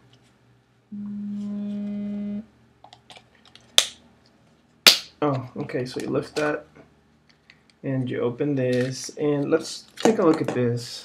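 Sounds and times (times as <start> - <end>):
flat humming: 0.9 - 2.6
sharp plastic snap: 3.8 - 4.0.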